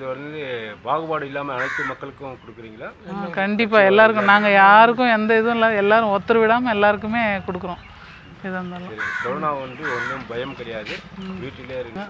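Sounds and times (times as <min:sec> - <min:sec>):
woman talking: 0:03.1 - 0:09.0.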